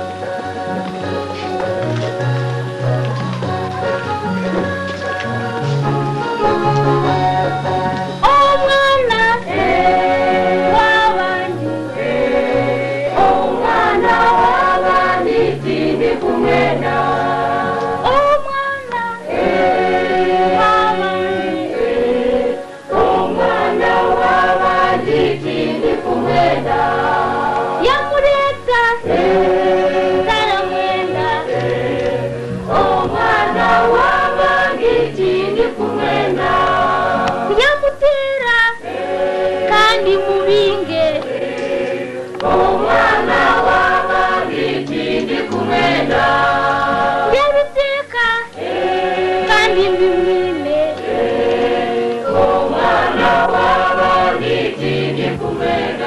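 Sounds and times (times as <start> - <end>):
choir singing: 5.3 - 56.0.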